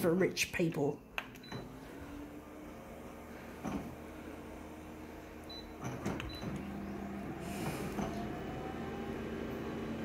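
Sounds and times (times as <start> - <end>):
copier motors humming: 1.1 - 10.0
copier touch panel beeping: 1.3 - 1.8, 5.4 - 7.0.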